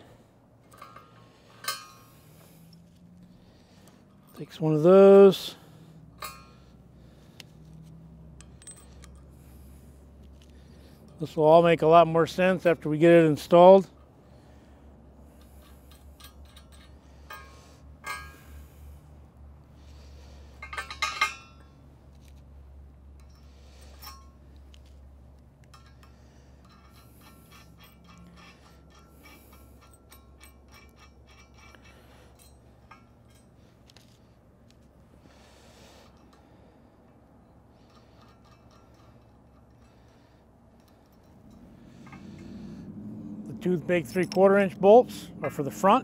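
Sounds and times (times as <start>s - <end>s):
metal nuts and bolts clinking: 0.6s - 3.1s, 3.8s - 6.8s, 7.6s - 9.6s, 15.2s - 18.8s, 20.2s - 42.6s, 43.4s - 46.0s.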